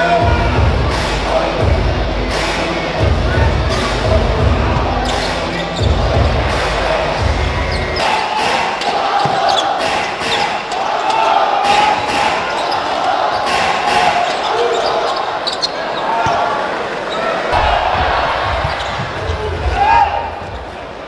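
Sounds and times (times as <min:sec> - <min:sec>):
arena crowd din: 0:00.0 - 0:21.0.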